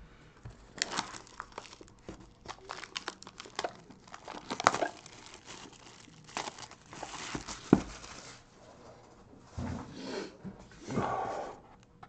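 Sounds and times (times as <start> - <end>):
plastic wrap crinkling and tearing: 0.6 - 8.4.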